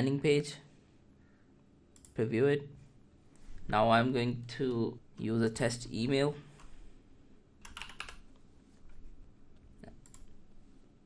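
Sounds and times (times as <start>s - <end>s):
typing on computer keyboard: 7.6s - 8.2s.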